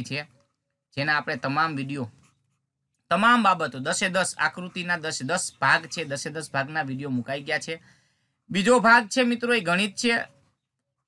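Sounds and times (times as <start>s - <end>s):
man speaking: 0.0s - 2.3s, 3.1s - 7.8s, 8.5s - 10.4s.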